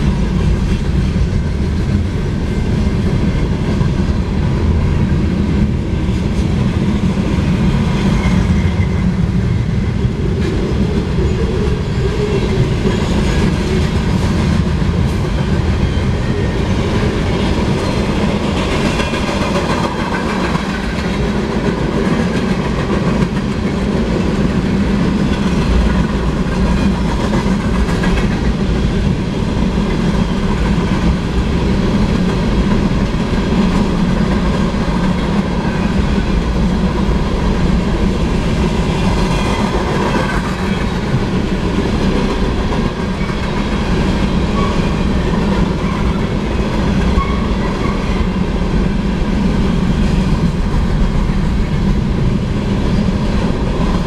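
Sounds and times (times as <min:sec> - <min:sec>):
steel wheels rumbling on rail: 0:00.0 - 0:54.0
wheels clickety-clack over rail joints: 0:00.0 - 0:54.0.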